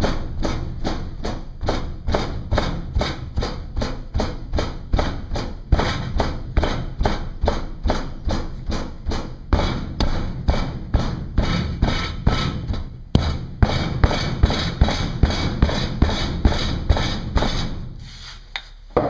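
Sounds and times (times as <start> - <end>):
hammer ramming sand: 0.0 - 17.8.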